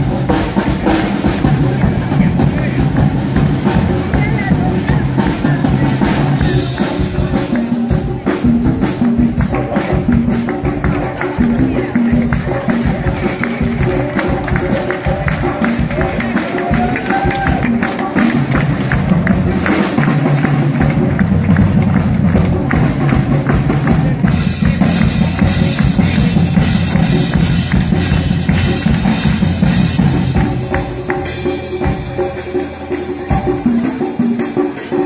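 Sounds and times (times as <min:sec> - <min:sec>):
big band playing live: 0:00.0 - 0:35.0
drum kit steady beat: 0:00.0 - 0:35.0.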